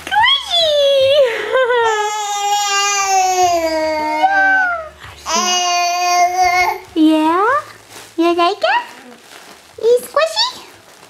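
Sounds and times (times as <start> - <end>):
infant cooing: 1.9 - 6.9.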